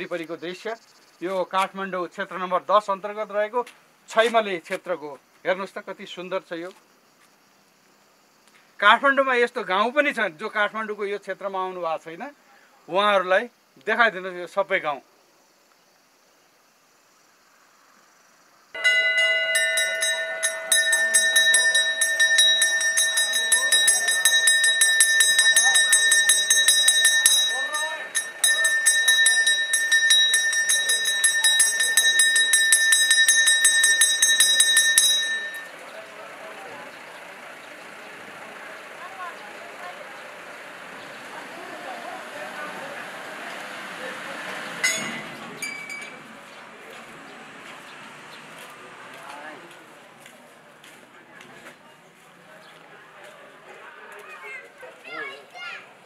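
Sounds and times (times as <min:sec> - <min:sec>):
high-pitched rising and falling calls: 0:18.8 - 0:36.2
temple bell rung rapidly: 0:18.8 - 0:36.9, 0:38.6 - 0:46.3
voices talking: 0:18.8 - 0:56.0.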